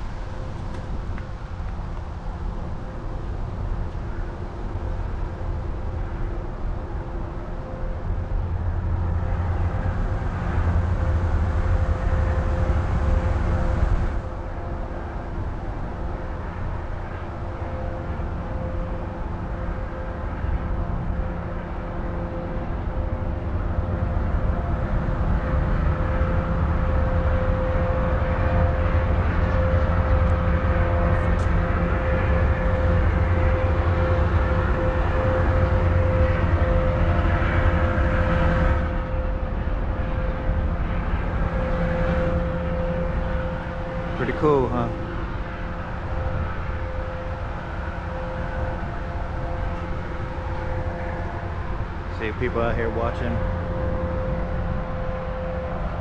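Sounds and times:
boat diesel engines droning: 0.0 - 56.0.

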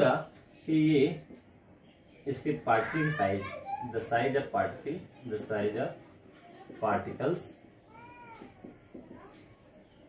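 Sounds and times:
marker ticking on whiteboard: 1.2 - 1.6, 8.1 - 9.5.

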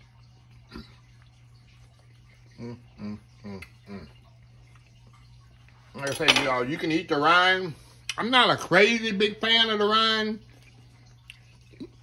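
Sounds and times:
man humming mm while tasting: 2.6 - 4.2.

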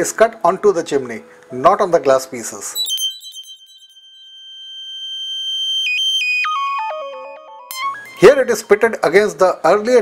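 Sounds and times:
descending electronic tones: 2.8 - 9.0
high steady electronic tone: 2.8 - 9.2.

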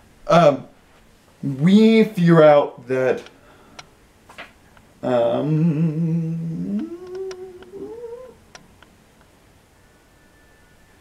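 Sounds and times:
faint clicks: 3.1 - 4.9, 6.7 - 9.3
man humming thoughtfully: 5.0 - 8.4.

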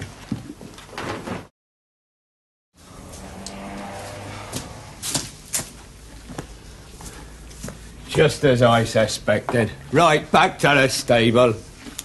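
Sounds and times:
horse hooves on brick floor: 3.1 - 9.8.

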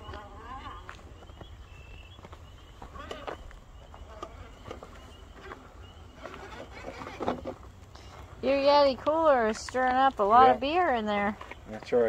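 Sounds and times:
faint toy car motor whine: 6.1 - 7.7.

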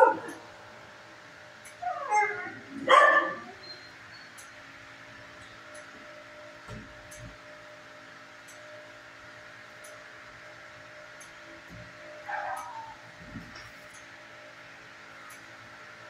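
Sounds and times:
electrical hum: 0.0 - 16.0.

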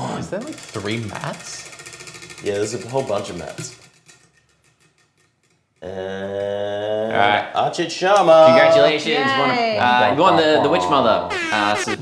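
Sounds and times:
prize wheel pointer ticking: 0.3 - 5.4
person speaking: 8.4 - 12.0.

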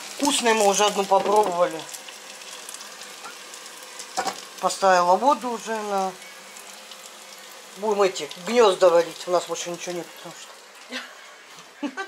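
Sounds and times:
chicken sizzling in a pan: 0.0 - 12.0.

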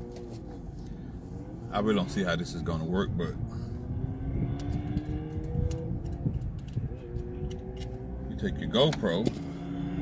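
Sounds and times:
steady low rumble: 0.4 - 8.8.

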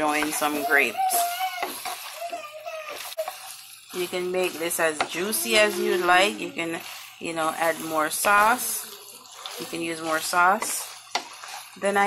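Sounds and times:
faint sizzle: 0.0 - 12.0
spoon stirring thick sauce: 0.0 - 12.0.

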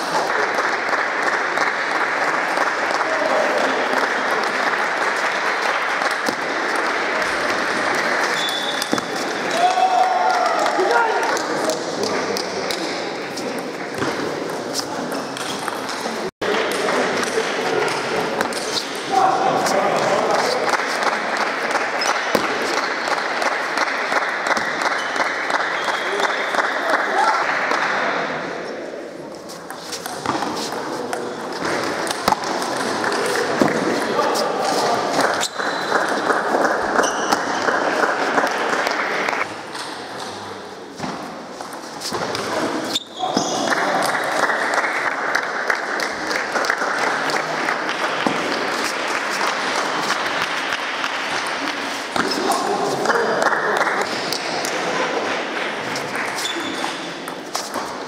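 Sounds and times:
hubbub of many voices: 0.0 - 58.0.

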